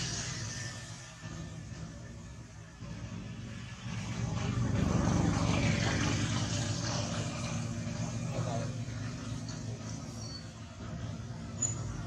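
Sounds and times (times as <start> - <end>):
passing vehicle engine rumble: 0.0 - 12.0.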